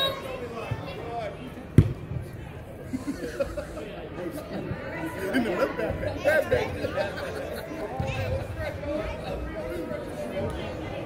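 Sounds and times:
voices chattering in a hall: 0.0 - 11.0
ball being kicked: 1.8 - 2.2.

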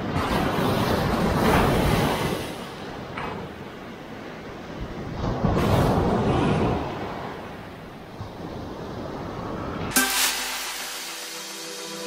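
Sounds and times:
surf washing up sand: 8.2 - 12.0.

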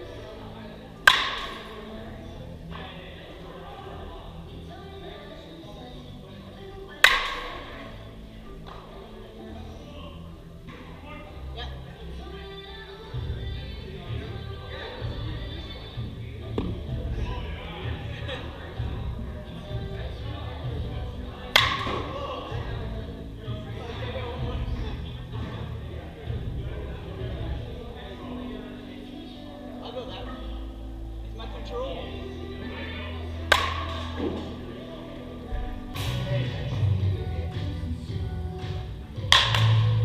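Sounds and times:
background music: 0.0 - 40.0
echoing voices: 0.0 - 40.0
baseball bat hitting ball: 1.0 - 1.8, 7.0 - 7.8, 21.6 - 22.2, 33.5 - 34.5, 39.3 - 40.0.

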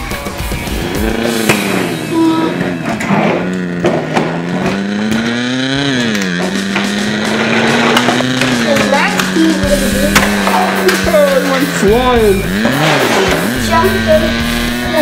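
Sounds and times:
child imitating engine noise: 0.8 - 15.0.

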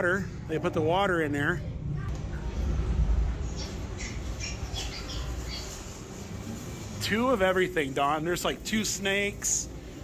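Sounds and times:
steady low rumble: 0.0 - 10.0
recorded animal squawks and chirps: 3.4 - 6.1.

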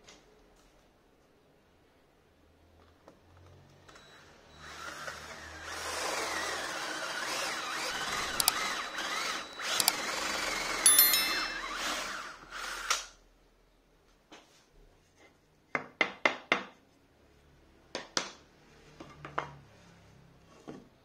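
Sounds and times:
cordless drill boring into wood: 4.6 - 10.8.

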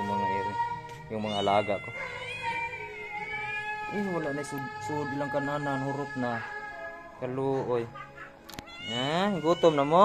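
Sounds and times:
cat meowing: 0.1 - 7.7, 8.5 - 10.0.

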